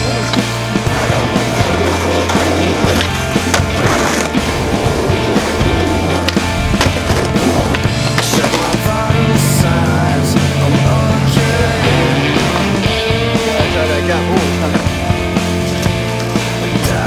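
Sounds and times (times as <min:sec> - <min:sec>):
rock music with bass line: 0:00.0 - 0:17.0
skateboard wheels rolling on pavement: 0:00.0 - 0:17.0.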